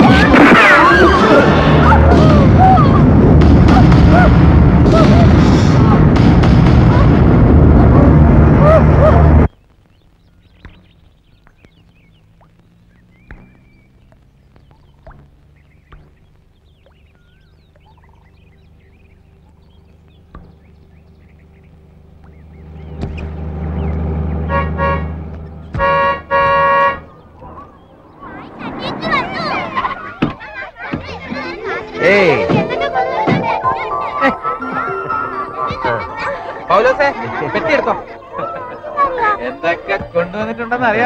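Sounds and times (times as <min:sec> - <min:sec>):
voices: 0:00.0 - 0:06.1, 0:21.7 - 0:41.0
vehicle engine rumble: 0:00.0 - 0:33.7
faint bird chirps: 0:09.5 - 0:24.0
vehicle horn honking: 0:24.4 - 0:27.1.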